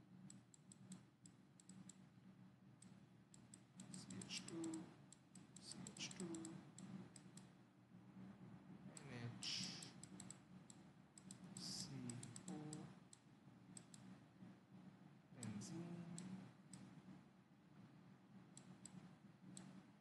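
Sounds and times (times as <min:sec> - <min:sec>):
person murmuring: 0:09.0 - 0:09.9, 0:11.6 - 0:12.9, 0:15.4 - 0:16.4.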